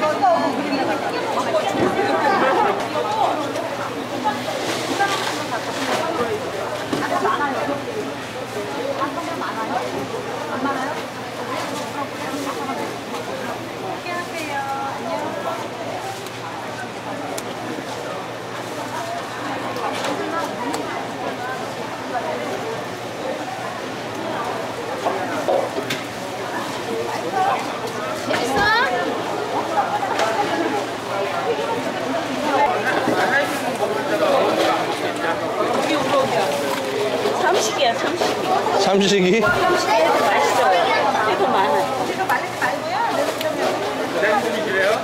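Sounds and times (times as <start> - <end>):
background chatter of voices: 0.0 - 45.0.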